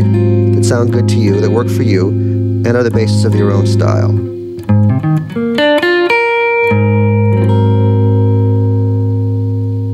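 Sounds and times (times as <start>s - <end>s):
electric guitar chord ringing: 0.0s - 9.9s.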